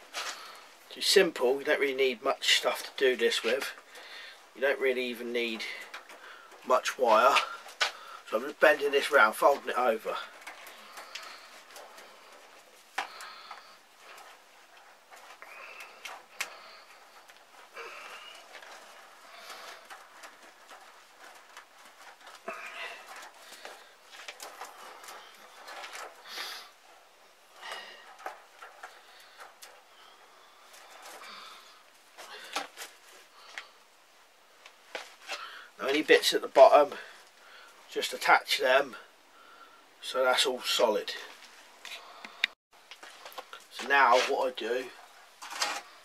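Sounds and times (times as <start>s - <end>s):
wire mesh rattling and scraping: 0.0s - 46.0s.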